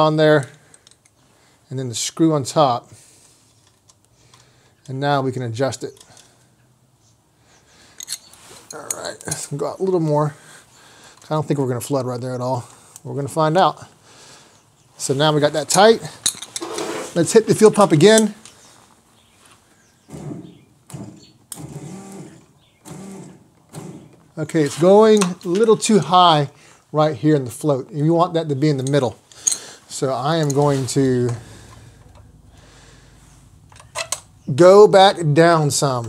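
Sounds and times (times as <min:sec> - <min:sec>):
electric fuel pump whirring: 0:20.1 - 0:24.2.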